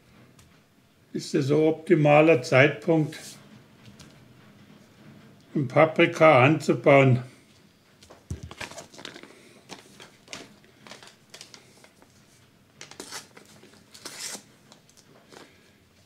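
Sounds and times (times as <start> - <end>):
paper packet rustling: 8.0 - 15.6.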